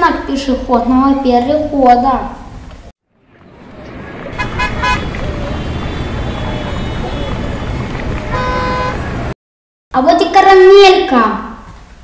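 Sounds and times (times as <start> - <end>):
passing cars rumble: 3.1 - 9.4
short car horn toots: 4.4 - 7.4, 8.3 - 9.2.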